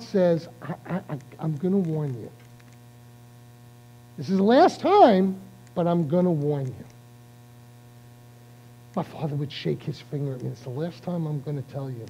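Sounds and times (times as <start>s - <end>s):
low electrical mains hum: 0.0s - 12.0s.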